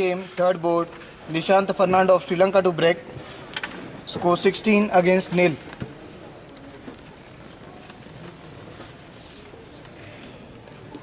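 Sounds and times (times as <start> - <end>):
background hum of hall: 0.0 - 11.0.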